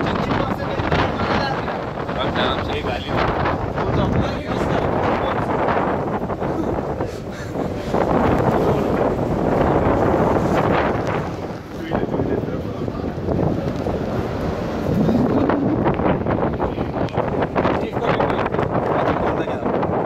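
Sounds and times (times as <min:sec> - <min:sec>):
sea washing against hulls: 0:00.0 - 0:20.0
wind gusts on microphone: 0:00.0 - 0:20.0.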